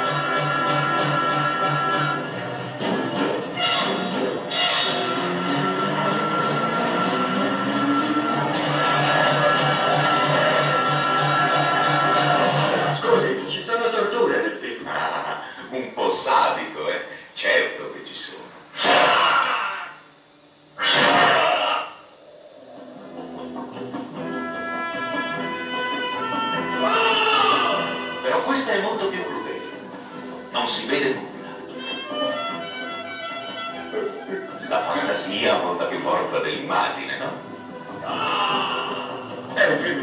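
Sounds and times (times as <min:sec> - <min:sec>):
loud noisy bursts: 0:00.0 - 0:13.8, 0:16.2 - 0:31.3
voices over music: 0:04.8 - 0:20.0, 0:26.7 - 0:31.5, 0:33.9 - 0:40.0
high-pitched cry: 0:26.8 - 0:27.9
man's voice: 0:26.9 - 0:29.7, 0:34.0 - 0:37.4, 0:38.1 - 0:40.0.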